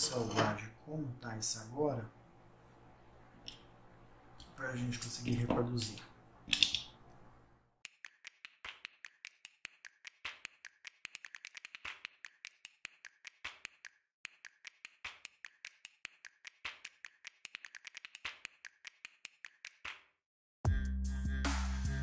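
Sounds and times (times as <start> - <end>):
percussive music of clicks and taps: 7.8 - 20.2.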